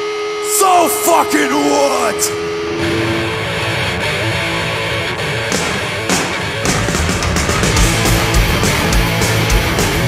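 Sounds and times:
distorted electric guitars: 0:00.0 - 0:10.0
cymbal crashes: 0:02.3 - 0:08.0
drums playing hard: 0:03.0 - 0:10.0.

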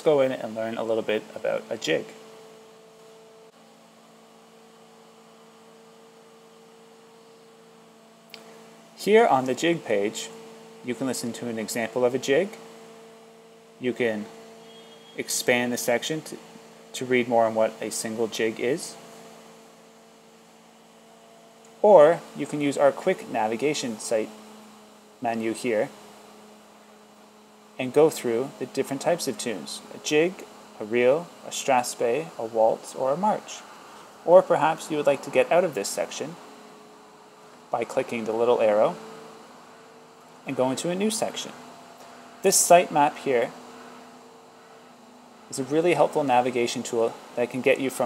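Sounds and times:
faint electrical hum: 0:00.0 - 0:48.0
low hiss: 0:00.0 - 0:48.0.

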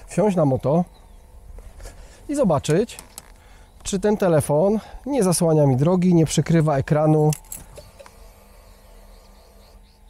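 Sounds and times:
faint bird chirps: 0:00.0 - 0:01.4, 0:07.8 - 0:10.0.

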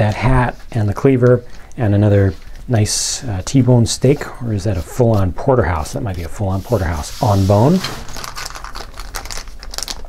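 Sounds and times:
plastic bag crinkling: 0:07.6 - 0:10.0.

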